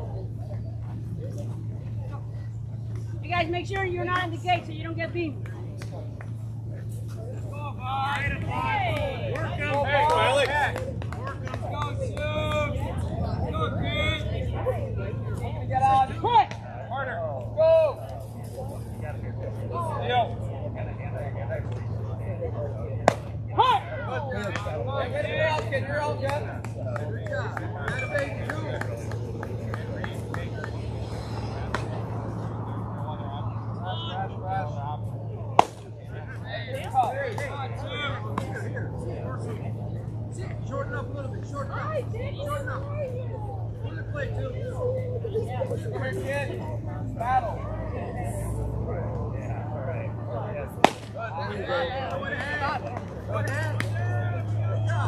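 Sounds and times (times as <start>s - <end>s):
chatter of voices: 0.0s - 55.0s
steady low hum: 0.0s - 55.0s
baseball smacking into glove: 35.6s - 35.9s, 50.8s - 51.2s.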